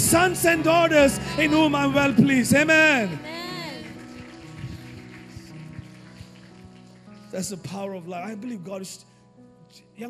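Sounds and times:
soft worship band music: 0.0s - 10.0s.

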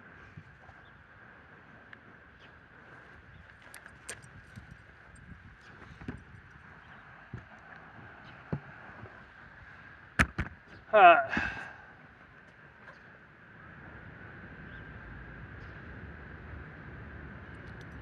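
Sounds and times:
man grunting: 10.9s - 11.7s.

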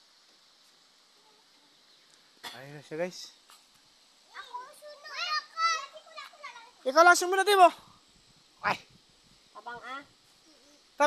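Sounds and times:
small child talking: 4.3s - 6.8s.

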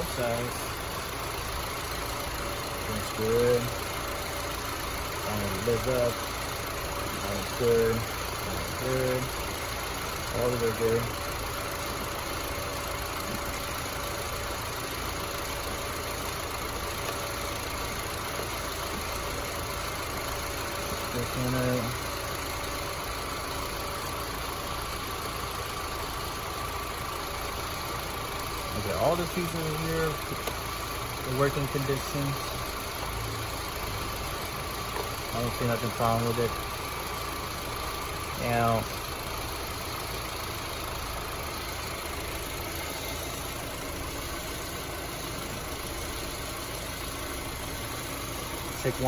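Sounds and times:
car engine idling: 0.0s - 49.0s.

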